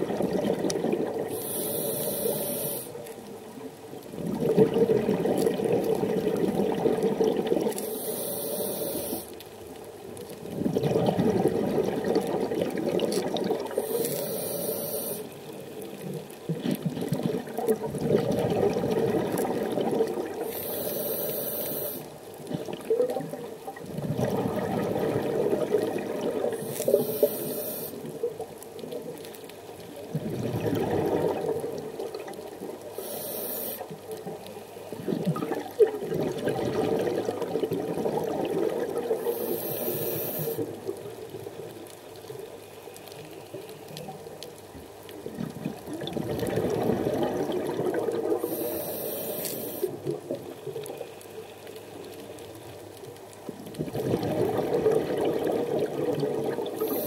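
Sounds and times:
exhaled bubbles rushing: 0.0 - 1.5, 4.1 - 7.8, 10.5 - 14.0, 16.5 - 20.6, 22.5 - 28.5, 30.1 - 32.9, 34.9 - 41.5, 45.2 - 48.8, 53.6 - 57.0
regulator inhale hiss: 1.3 - 3.1, 7.7 - 9.4, 13.7 - 15.5, 20.4 - 22.2, 26.6 - 28.1, 32.8 - 34.0, 39.2 - 40.8, 48.4 - 50.0, 56.8 - 57.0.

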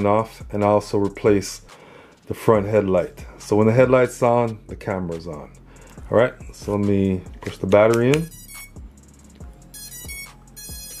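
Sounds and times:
short high electronic beeps: 8.2 - 8.8, 9.7 - 11.0.

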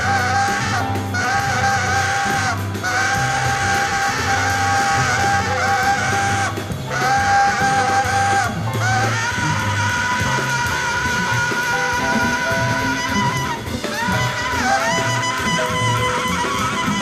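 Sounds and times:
double bass: 0.0 - 17.0
drums: 0.0 - 17.0
piano: 0.0 - 17.0
tenor saxophone sustained notes: 0.0 - 17.0.

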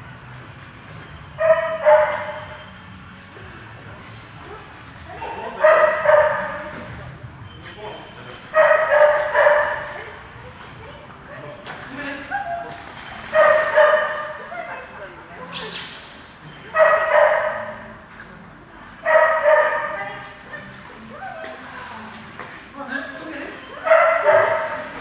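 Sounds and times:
dog barking in high yelps: 1.4 - 2.6, 5.6 - 6.7, 8.6 - 9.9, 13.3 - 14.4, 16.7 - 17.8, 23.8 - 24.9.

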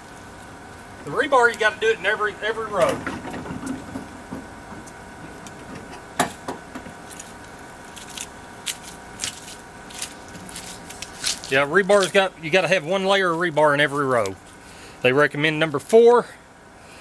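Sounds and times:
faint hum: 0.0 - 17.0.

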